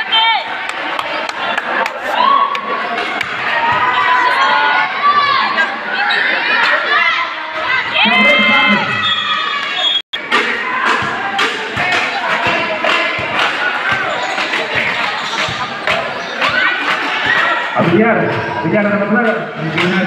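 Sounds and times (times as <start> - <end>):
spectators shouting and cheering: 0.0 - 20.0.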